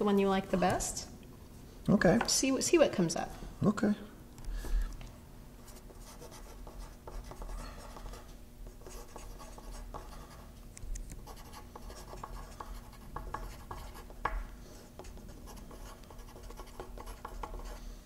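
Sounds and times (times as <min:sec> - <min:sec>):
pencils scratching on paper: 0:05.7 - 0:10.5, 0:11.2 - 0:14.2, 0:14.8 - 0:17.8.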